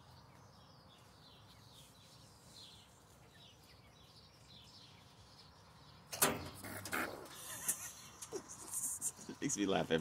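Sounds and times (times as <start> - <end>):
rabbits scuffling on mesh: 0.8 - 5.6.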